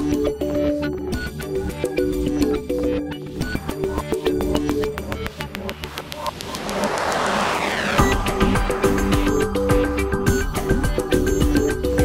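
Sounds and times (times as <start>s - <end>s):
electronic music: 3.2s - 10.8s
rising noise sweep: 5.5s - 10.2s.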